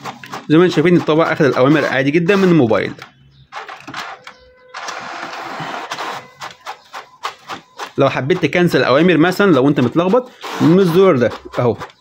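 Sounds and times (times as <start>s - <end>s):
inkjet printer printing: 0.0s - 12.0s.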